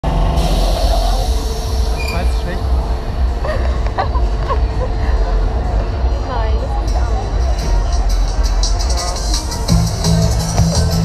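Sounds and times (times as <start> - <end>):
distant voices: 0.0 - 11.0
low rumble: 0.0 - 11.0
high squeals: 0.4 - 2.5.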